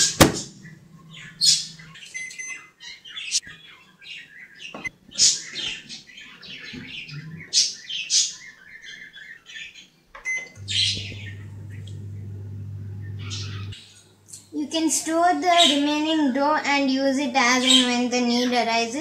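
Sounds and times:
microwave oven humming: 0.0 - 2.4, 10.3 - 14.8.

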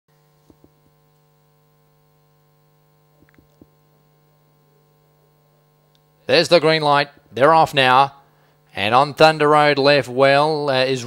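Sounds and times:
faint electrical hum: 0.1 - 11.0.

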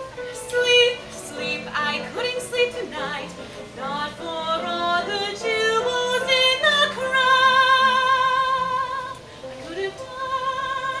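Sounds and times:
woman singing show tune: 0.0 - 11.0.

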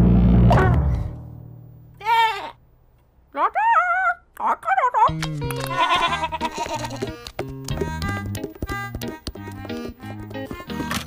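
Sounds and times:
cartoon lamb bleat: 5.6 - 7.2.

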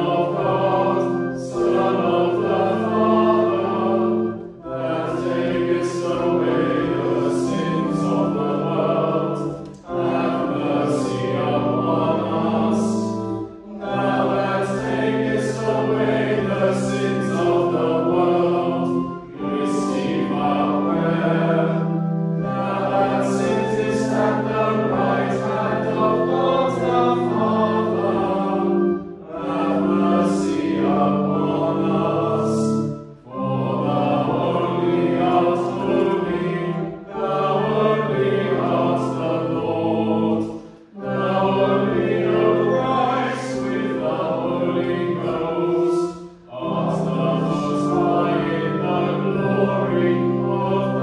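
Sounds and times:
congregation singing a hymn: 0.0 - 51.0
low held accompanying notes: 0.0 - 51.0.

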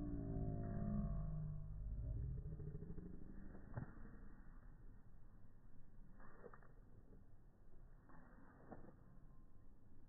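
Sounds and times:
low rumble: 0.0 - 5.0.

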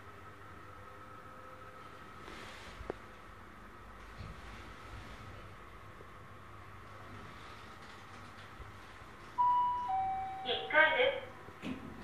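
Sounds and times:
elevator hum: 0.0 - 12.0
two-note arrival chime: 9.4 - 10.5
recorded voice announcement: 10.4 - 11.4.

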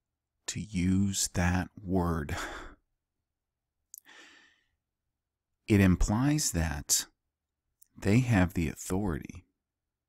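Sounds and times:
man's mouth click: 3.9 - 4.1
faint intake of breath: 4.0 - 4.8.

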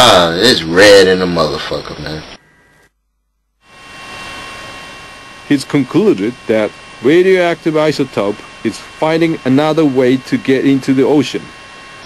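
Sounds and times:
steady hiss with thin whine: 0.0 - 2.9, 3.6 - 12.0.

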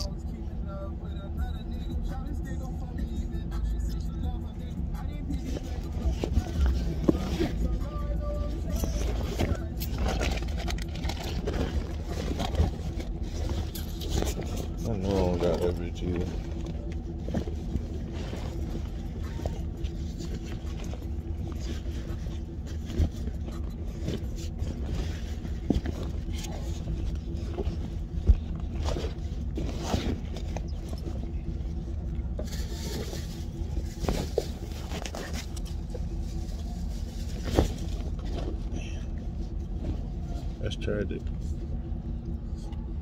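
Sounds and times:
car engine idling: 0.0 - 43.0.

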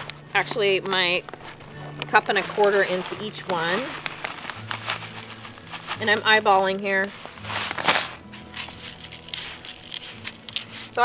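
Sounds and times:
gritty scraping and rustling: 0.0 - 11.0
small scratches: 7.0 - 11.0.

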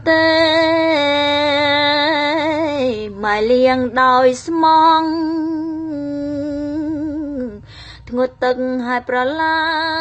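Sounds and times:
quick breath: 7.6 - 8.0.

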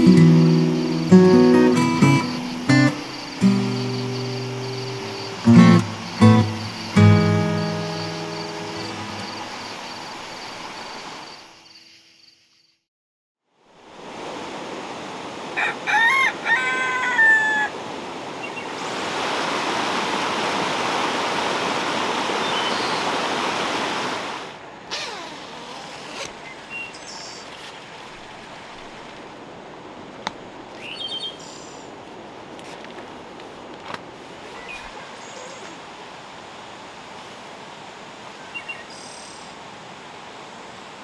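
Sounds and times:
rain hiss: 0.0 - 11.8, 16.5 - 32.3, 33.0 - 41.0
rooster crowing: 15.5 - 17.8.

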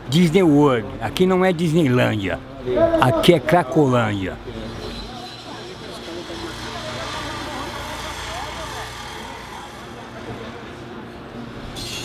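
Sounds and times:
low traffic rumble: 0.0 - 11.8
distant indistinct voices: 0.0 - 12.0.

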